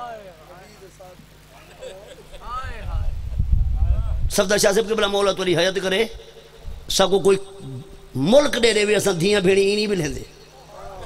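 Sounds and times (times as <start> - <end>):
low rumble: 2.7 - 4.3.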